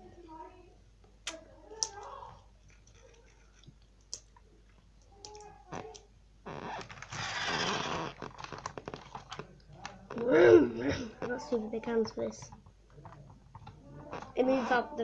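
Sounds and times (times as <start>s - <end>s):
plastic toy scraping microphone: 6.6s - 9.3s.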